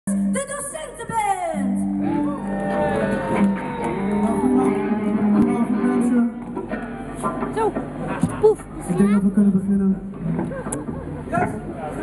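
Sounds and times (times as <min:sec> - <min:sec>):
electric guitars sustained chords: 0:01.5 - 0:08.1.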